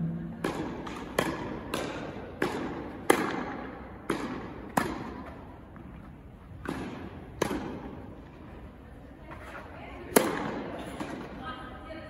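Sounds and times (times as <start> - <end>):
tennis racket striking ball: 0.3 - 5.4, 6.6 - 8.1, 10.1 - 11.3.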